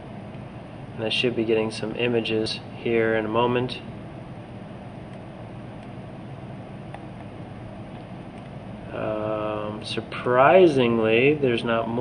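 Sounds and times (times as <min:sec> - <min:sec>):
microphone hiss and hum: 0:00.0 - 0:12.0.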